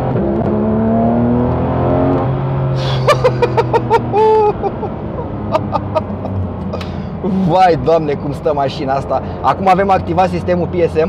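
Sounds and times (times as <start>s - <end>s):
car engine accelerating: 0.0s - 11.0s
man laughing: 2.8s - 7.6s.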